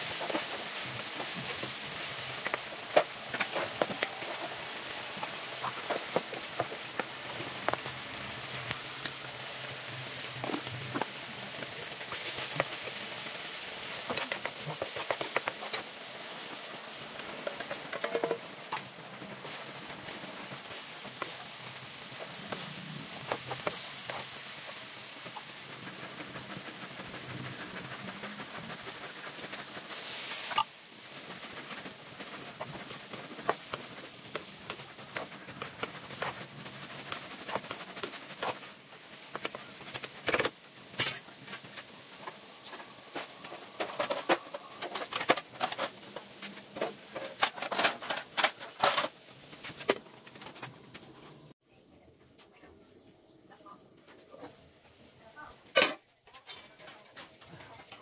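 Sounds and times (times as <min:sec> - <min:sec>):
food sizzling in a wok: 0:00.0 - 0:49.8.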